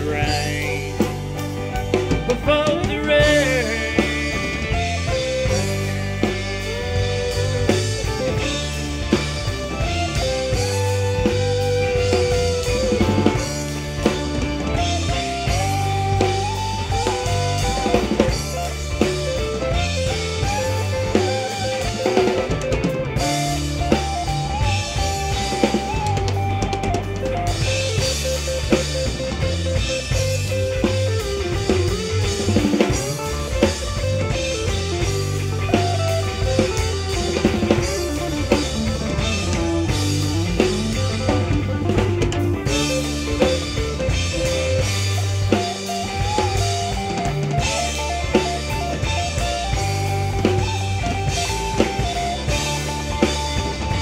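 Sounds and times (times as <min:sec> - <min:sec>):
fiddle sliding melody: 0:00.0 - 0:28.4
bass: 0:00.0 - 0:54.0
drum kit steady beat: 0:00.0 - 0:54.0
electric guitar: 0:00.0 - 0:54.0.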